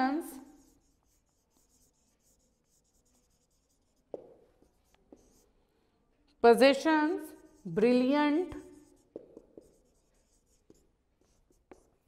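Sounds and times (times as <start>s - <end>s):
marker squeaking on whiteboard: 0.4s - 5.5s, 8.5s - 12.0s.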